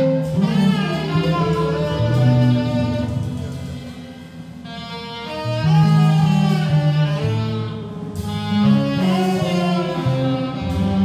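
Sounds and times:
jazz band playing held notes: 0:00.0 - 0:11.0
low bass note: 0:00.0 - 0:11.0.

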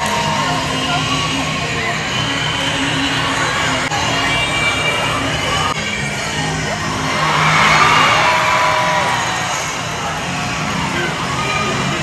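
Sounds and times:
crowd cheering and whooping: 0:00.0 - 0:01.8, 0:06.8 - 0:12.0
dance music: 0:00.0 - 0:12.0.

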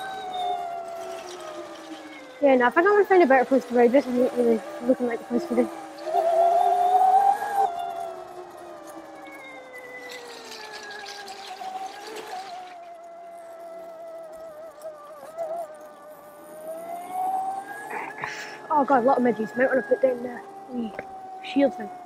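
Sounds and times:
electric motor whining: 0:00.0 - 0:22.0.

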